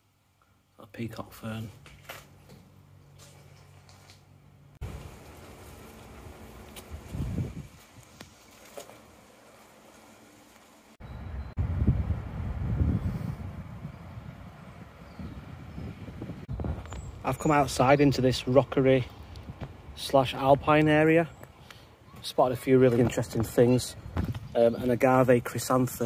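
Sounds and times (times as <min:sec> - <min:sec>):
low rumbling noise: 0:11.0 - 0:17.3.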